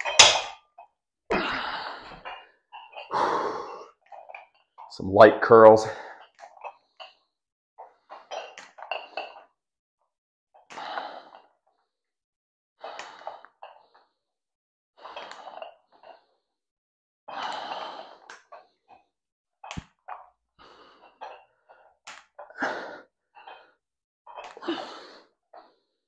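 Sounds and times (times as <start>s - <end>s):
man breathing forcefully: 3.1s - 3.9s.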